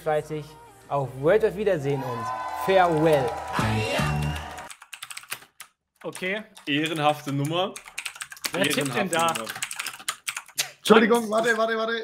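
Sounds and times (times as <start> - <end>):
typing on computer keyboard: 4.1 - 10.6
voice: 8.5 - 9.5, 10.9 - 12.0.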